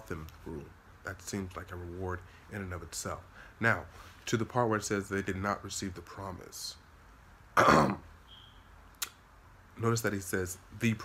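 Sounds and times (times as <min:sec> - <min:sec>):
man speaking: 0:00.0 - 0:06.8, 0:09.8 - 0:11.0.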